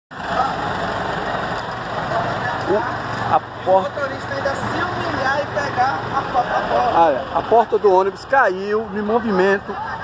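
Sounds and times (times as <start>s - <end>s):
bus diesel engine idling: 0.1s - 10.0s
faint voices: 0.2s - 10.0s.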